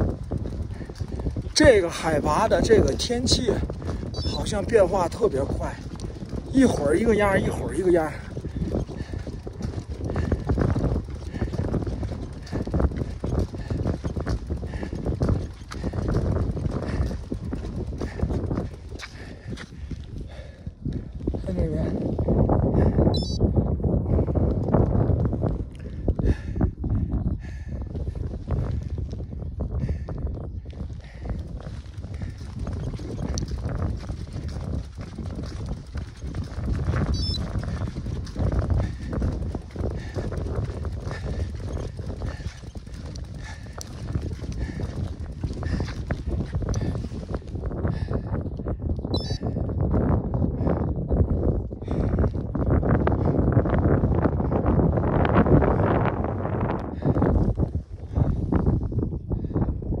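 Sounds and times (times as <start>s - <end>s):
wind buffeting microphone: 0.0s - 60.0s.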